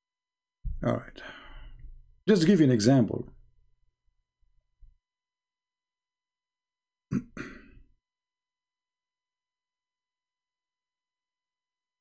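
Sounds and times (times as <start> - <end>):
man clearing his throat: 7.1 - 7.9.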